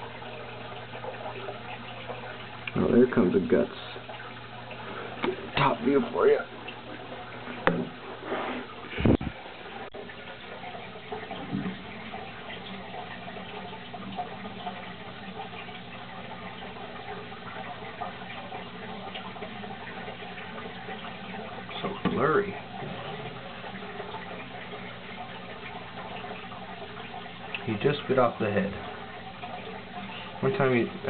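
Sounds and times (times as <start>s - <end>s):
water trickling in aquarium: 0.0s - 31.0s
knocks and thud: 7.6s - 8.0s.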